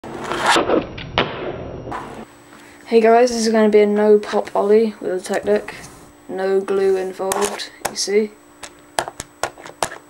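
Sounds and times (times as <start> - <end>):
rustling scrape on desktop: 5.5 - 6.1, 6.7 - 7.7.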